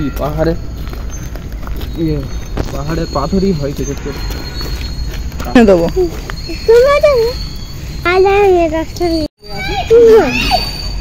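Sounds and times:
children's voices: 6.0 - 11.0.

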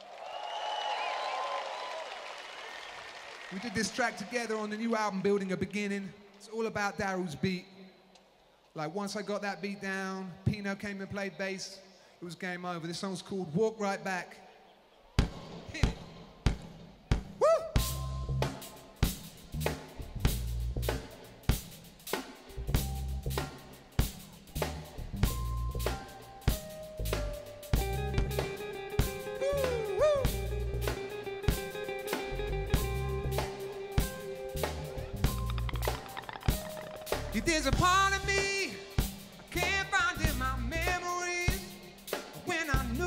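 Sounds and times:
drum kit groove: 15.2 - 43.0
bass guitar notes: 17.8 - 18.6, 19.4 - 21.1, 22.6 - 23.6, 24.4 - 41.0, 42.8 - 43.0.

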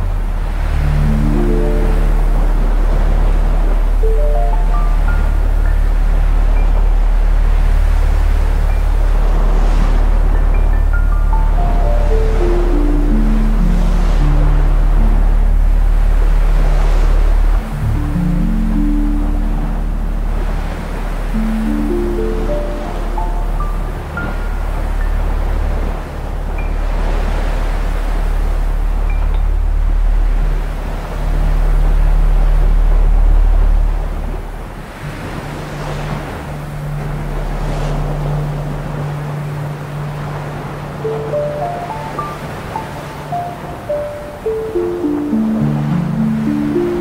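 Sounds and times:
low synth drones: 0.0 - 47.0
sea waves: 0.0 - 47.0
wind: 0.0 - 47.0.

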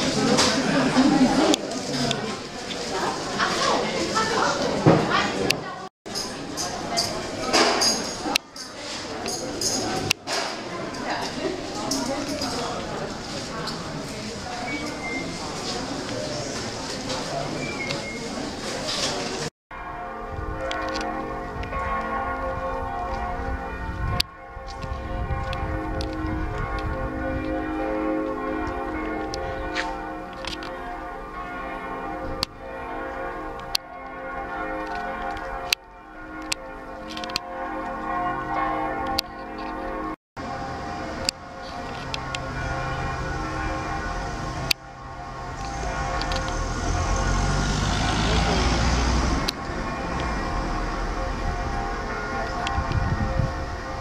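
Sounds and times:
church bells pealing: 19.7 - 54.0.

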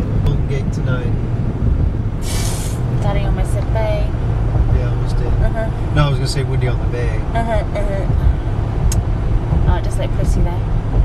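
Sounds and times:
car road and engine rumble: 0.0 - 11.0
short burst of hiss: 2.2 - 2.8.

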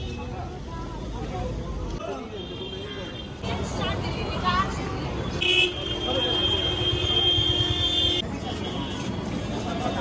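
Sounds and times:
street crowd: 0.0 - 10.0
traffic: 0.0 - 10.0
vehicle horn honking: 5.4 - 8.2.

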